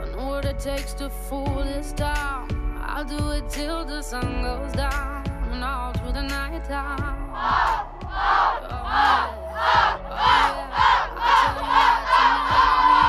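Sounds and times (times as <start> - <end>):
background music: 0.0 - 13.0
girls chanting shouts: 7.4 - 13.0.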